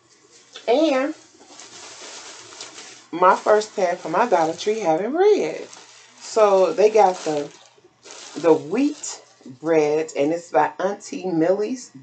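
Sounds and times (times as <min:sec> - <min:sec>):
plastic bag crinkling: 0:00.4 - 0:10.2.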